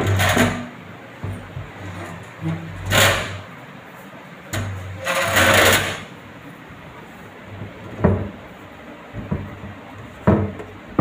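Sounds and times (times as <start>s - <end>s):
drawer sliding on metal runners: 1.3s - 3.5s, 4.6s - 6.1s.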